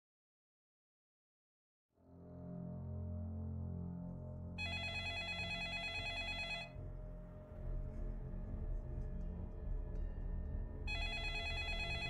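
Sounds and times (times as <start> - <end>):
warbling electronic telephone ring: 4.6 - 6.7, 10.9 - 12.0
low dark music drone: 6.7 - 12.0.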